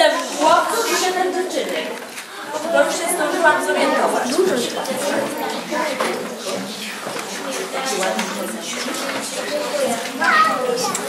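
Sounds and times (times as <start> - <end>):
children chattering and calling: 0.0 - 11.0
high child's voice: 9.6 - 11.0.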